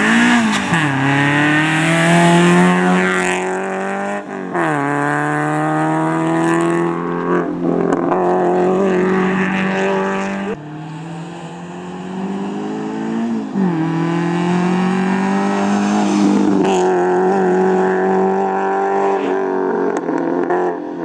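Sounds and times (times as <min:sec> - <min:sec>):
car engine at high revs: 0:00.0 - 0:21.0.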